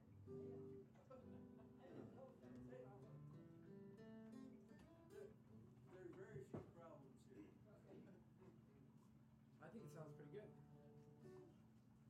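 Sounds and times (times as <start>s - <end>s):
acoustic guitar: 0.0s - 6.5s.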